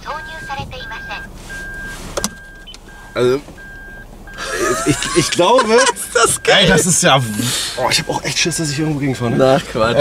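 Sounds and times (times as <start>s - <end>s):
dashboard warning chime beeping: 0.0s - 10.0s.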